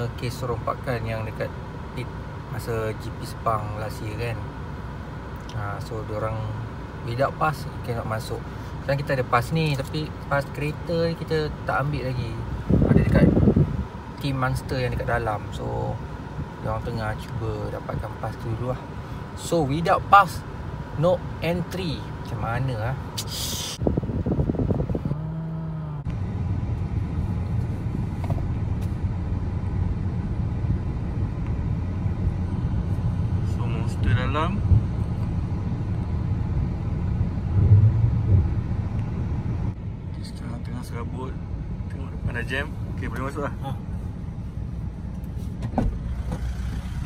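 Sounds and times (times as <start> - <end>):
car engine idling: 0.0 - 47.0.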